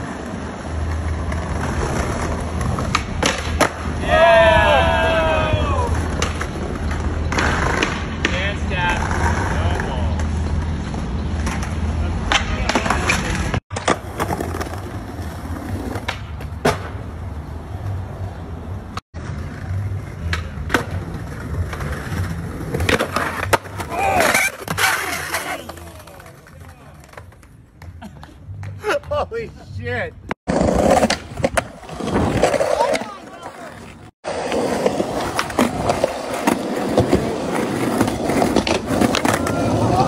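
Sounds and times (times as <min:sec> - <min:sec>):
skateboard wheels rolling on paving: 0:00.0 - 0:29.8, 0:30.5 - 0:40.0
person shouting: 0:04.0 - 0:06.0, 0:23.9 - 0:24.4
skateboard clacking on ground: 0:06.0 - 0:14.9, 0:19.6 - 0:29.2, 0:30.5 - 0:40.0.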